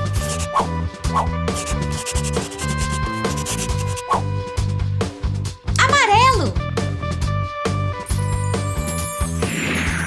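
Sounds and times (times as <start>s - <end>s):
background music with bass: 0.0s - 9.4s
crayon scribbling on paper: 0.1s - 0.5s, 1.5s - 4.2s.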